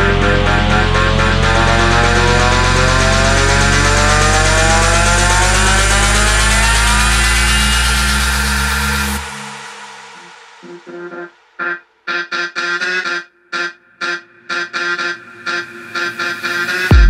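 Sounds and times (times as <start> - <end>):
deep bass: 0.0 - 11.3, 16.4 - 17.0
synth riser: 0.0 - 17.0.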